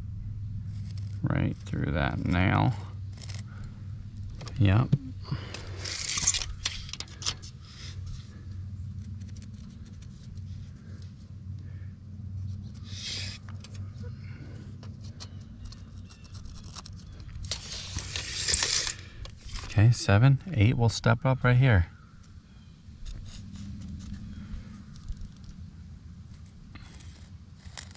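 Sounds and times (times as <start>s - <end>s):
low hum: 0.0s - 27.9s.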